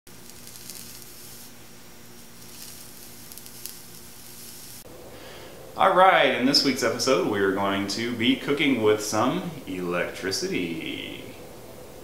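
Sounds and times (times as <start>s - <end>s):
hot dog sizzling with crackles: 0.1s - 4.9s
low steady hum: 0.1s - 12.0s.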